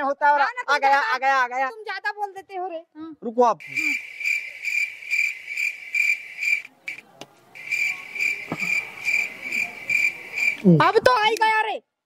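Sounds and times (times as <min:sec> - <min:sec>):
cricket chirping: 0:03.6 - 0:07.0, 0:07.6 - 0:10.7.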